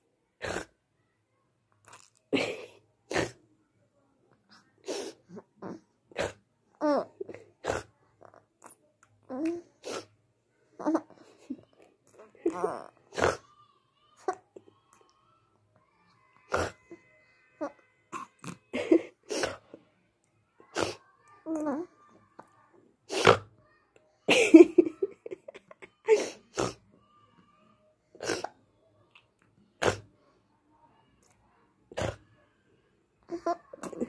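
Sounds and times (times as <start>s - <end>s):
baby laughing: 24.3s - 26.3s.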